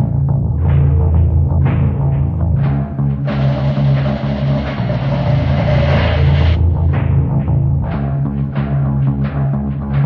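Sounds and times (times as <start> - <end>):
wash of noise: 3.3 - 6.6
low droning electronic tones: 3.3 - 6.8.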